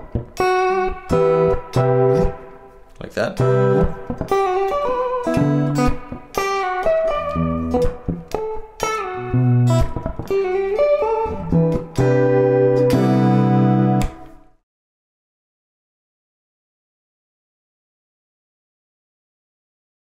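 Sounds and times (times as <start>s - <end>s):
electric guitar tapped lick: 12.8s - 14.4s.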